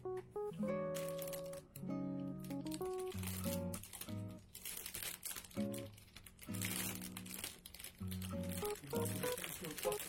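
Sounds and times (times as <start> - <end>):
plastic bag crinkling: 0.9 - 10.0
background music: 8.2 - 10.0.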